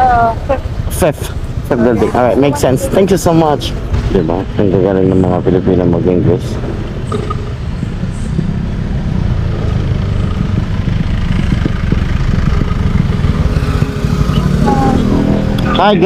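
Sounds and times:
motorcycle engine running: 0:00.0 - 0:16.0.

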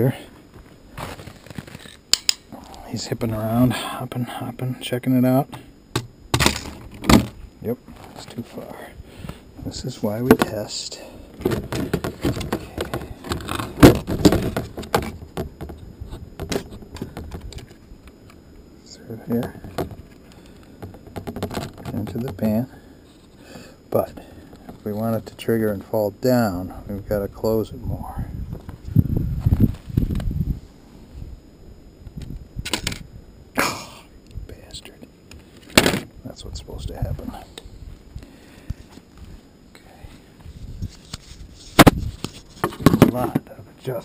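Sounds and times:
sharp metallic clicks: 0:02.1 - 0:02.5.

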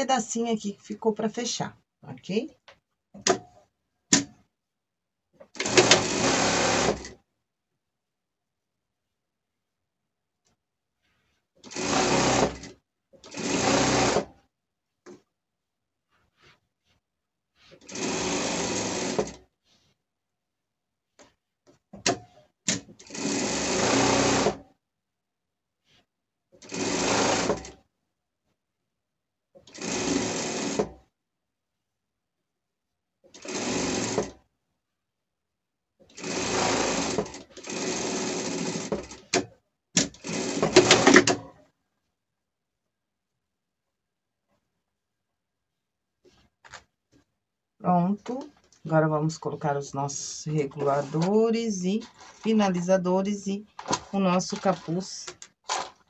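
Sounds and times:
sewing machine stitching: 0:05.4 - 0:07.2, 0:11.6 - 0:14.4, 0:17.7 - 0:19.5, 0:22.0 - 0:24.7, 0:26.6 - 0:27.9, 0:29.6 - 0:31.1, 0:33.2 - 0:34.5, 0:36.0 - 0:41.6, 0:50.8 - 0:52.6, 0:53.7 - 0:56.0.

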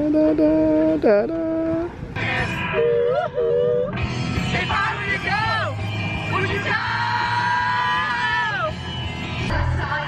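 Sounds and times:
car rumble: 0:00.0 - 0:10.0
women singing: 0:09.5 - 0:10.0.

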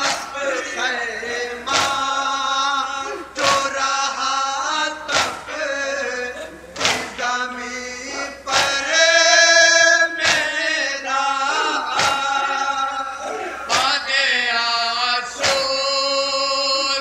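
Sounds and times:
men chanting in chorus: 0:00.0 - 0:17.0
hands striking chests: 0:05.1 - 0:05.5, 0:06.8 - 0:07.1, 0:11.9 - 0:12.4, 0:13.7 - 0:14.0.

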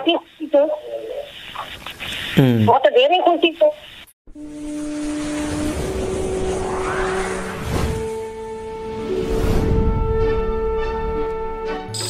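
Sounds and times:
low rumble: 0:04.4 - 0:10.8
upward whoosh: 0:04.8 - 0:10.2.

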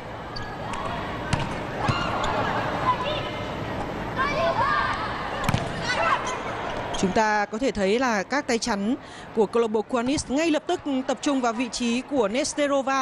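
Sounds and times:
crowd noise: 0:00.0 - 0:13.0.

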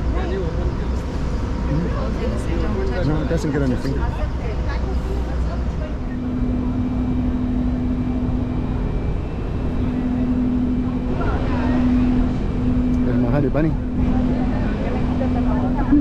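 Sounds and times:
low machine rumble: 0:00.0 - 0:16.0
steady hum: 0:00.0 - 0:16.0.

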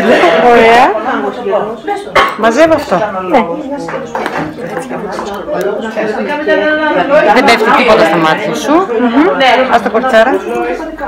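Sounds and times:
indistinct talking: 0:00.0 - 0:11.0.

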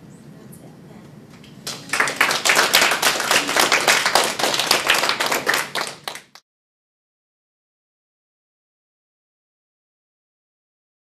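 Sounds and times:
audience applause: 0:01.6 - 0:06.4.

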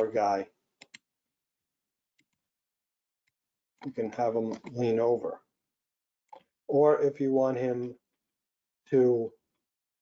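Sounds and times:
man talking: 0:00.0 - 0:00.5, 0:03.8 - 0:05.4, 0:06.7 - 0:08.0, 0:08.9 - 0:09.4
computer mouse clicks: 0:00.8 - 0:01.0.

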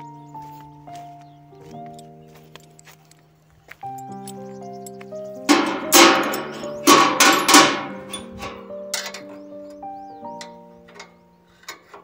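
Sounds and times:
background music: 0:00.0 - 0:12.0
metal-on-metal strikes: 0:05.4 - 0:09.4.

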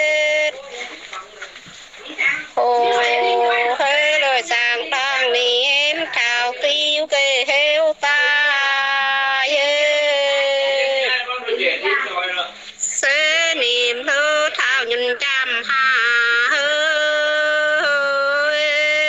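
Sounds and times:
person singing unaccompanied folk song: 0:00.0 - 0:11.3, 0:12.8 - 0:19.0.

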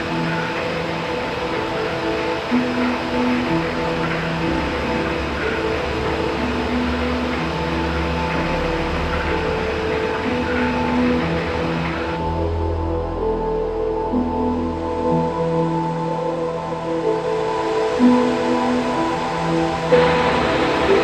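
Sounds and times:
ambient music held tones: 0:00.0 - 0:21.0
low drone: 0:00.0 - 0:21.0.

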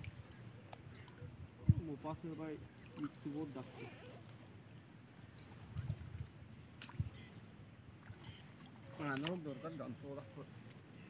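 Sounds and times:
sloshing in muddy water: 0:05.2 - 0:10.7.

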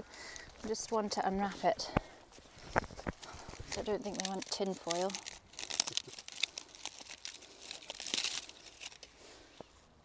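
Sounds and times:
aluminium foil crinkling and tearing: 0:02.4 - 0:09.3.

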